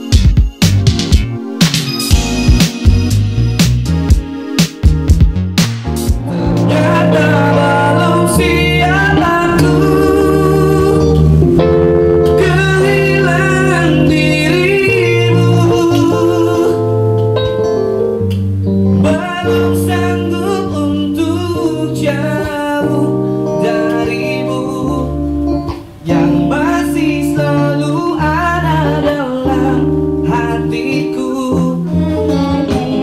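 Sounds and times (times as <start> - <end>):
live band with guitar and keyboard: 0.0 - 33.0
man singing into microphone: 6.2 - 17.4, 19.0 - 25.3, 26.0 - 33.0.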